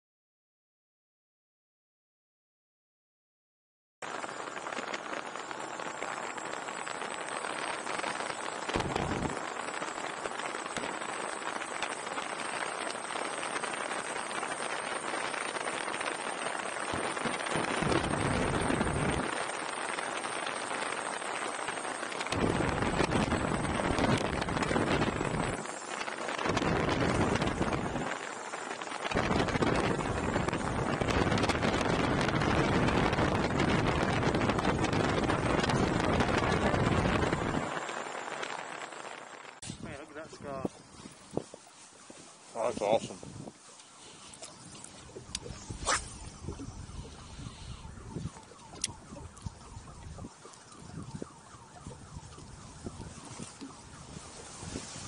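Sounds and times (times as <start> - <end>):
wind buffeting microphone: 4.6 - 55.0
water rushing along hull: 40.7 - 55.0.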